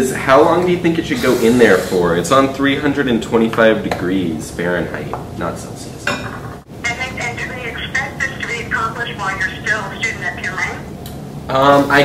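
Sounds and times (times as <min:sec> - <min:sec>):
woman talking through phone: 0:06.8 - 0:10.9.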